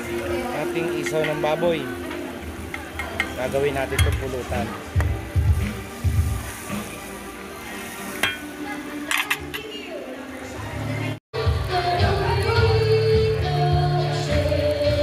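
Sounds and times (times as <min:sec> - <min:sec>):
meat sizzling in a pan: 0:00.0 - 0:09.4
music: 0:00.0 - 0:15.0
metal utensil clinking on pan: 0:02.7 - 0:04.5, 0:08.1 - 0:09.8.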